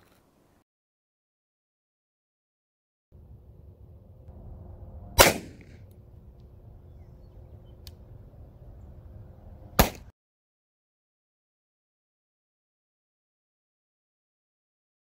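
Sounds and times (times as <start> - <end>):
outdoor background noise: 0.0 - 0.6, 3.2 - 10.1
pistol shots: 5.2 - 5.8, 9.8 - 10.1.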